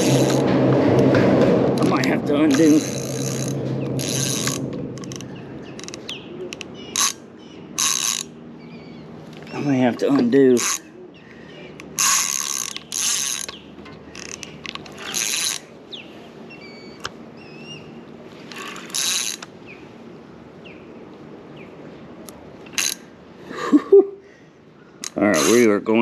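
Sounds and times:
fishing reel drag clicking: 2.5 - 7.2, 7.8 - 8.3, 10.6 - 10.8, 11.8 - 15.7, 18.5 - 19.5, 22.7 - 23.0.

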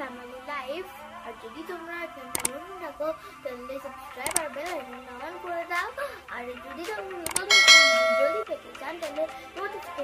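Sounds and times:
quick clicks: 4.2 - 4.5, 7.2 - 7.6
notification bell ding: 7.5 - 8.4.

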